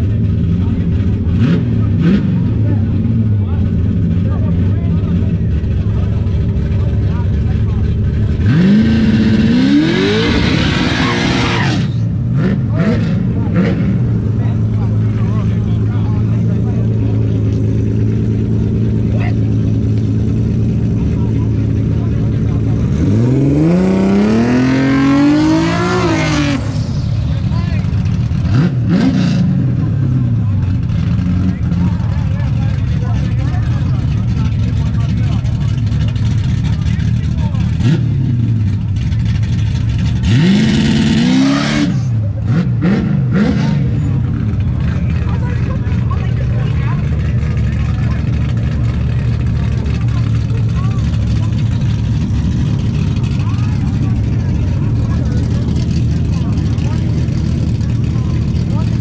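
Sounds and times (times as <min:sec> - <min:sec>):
drag car engine revving: 0:00.0 - 0:59.0.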